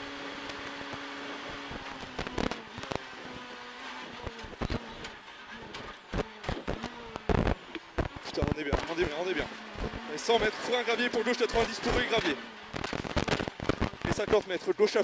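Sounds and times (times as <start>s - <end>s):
car engine at speed: 0.0s - 14.4s.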